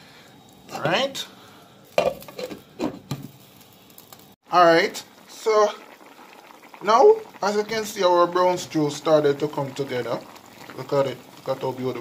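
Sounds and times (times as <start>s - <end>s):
pot simmering: 0.0s - 12.0s.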